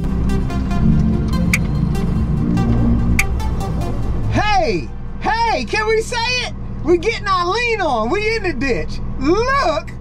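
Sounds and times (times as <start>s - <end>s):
tractor engine droning: 0.0s - 10.0s.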